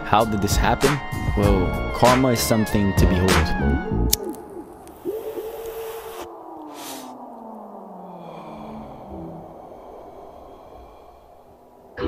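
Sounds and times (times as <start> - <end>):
low tone sliding downward: 3.9 - 12.0
hissing whoosh: 4.2 - 12.0.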